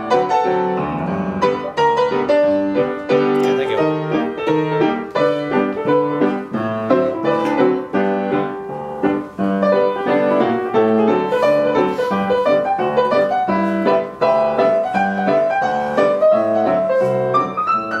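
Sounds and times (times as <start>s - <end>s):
ragtime piano piece: 0.0s - 18.0s.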